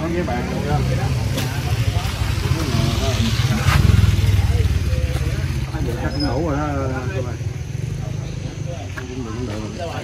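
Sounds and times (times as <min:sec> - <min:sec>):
faint background talk: 0:00.0 - 0:10.0
motorbike engine rumbling: 0:00.0 - 0:10.0.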